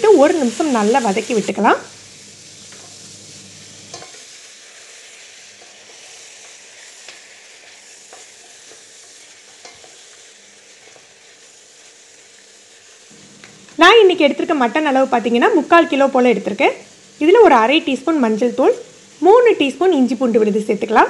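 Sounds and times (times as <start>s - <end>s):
meat sizzling in hot oil: 0.0s - 21.0s.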